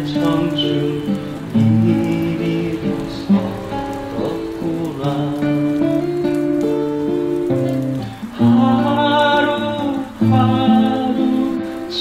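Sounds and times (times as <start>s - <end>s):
acoustic guitar fingerpicking: 0.0s - 12.0s.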